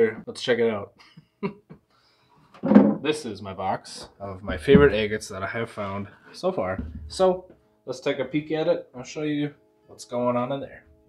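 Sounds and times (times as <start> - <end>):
man laughing: 1.0 - 1.8
wooden box lid knocks: 4.5 - 5.1, 6.8 - 7.4.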